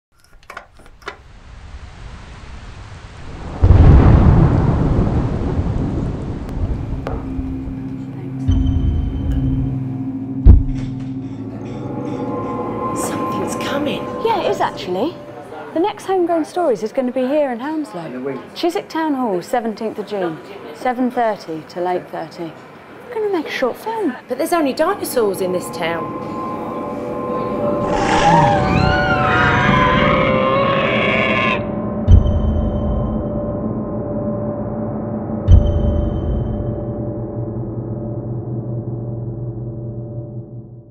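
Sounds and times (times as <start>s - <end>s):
thunder clap and rumble: 1.6s - 8.0s
dinosaur roar: 26.3s - 31.8s.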